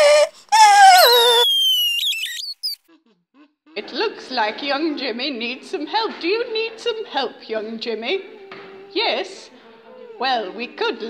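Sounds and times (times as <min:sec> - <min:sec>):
person wailing cry: 0:00.0 - 0:01.9
thin high tone sliding downward: 0:00.9 - 0:02.8.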